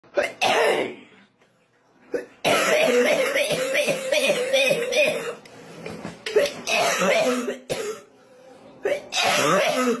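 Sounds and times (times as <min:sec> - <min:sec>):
person coughing: 0:00.2 - 0:01.1, 0:02.1 - 0:05.4, 0:06.3 - 0:08.1, 0:08.8 - 0:10.0.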